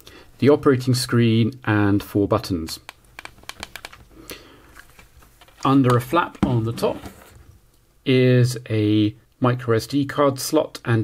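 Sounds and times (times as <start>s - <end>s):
plastic device rustling: 3.2s - 4.1s, 4.7s - 7.5s.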